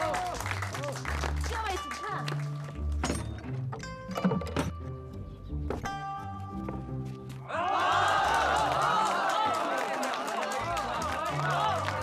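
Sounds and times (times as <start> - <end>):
crowd cheering and shouting: 7.5 - 12.0.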